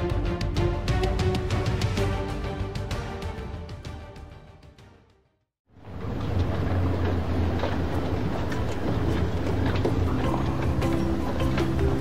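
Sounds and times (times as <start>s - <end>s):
music: 0.0s - 5.5s, 9.1s - 12.0s.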